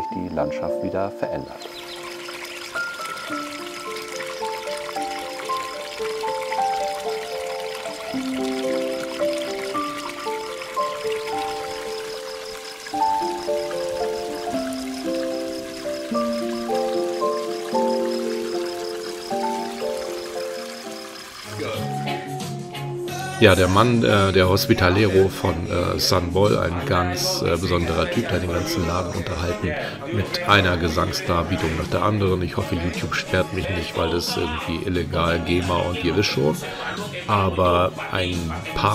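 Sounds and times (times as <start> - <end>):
instrumental background music: 0.0 - 38.9
water trickling into trough: 1.5 - 21.9.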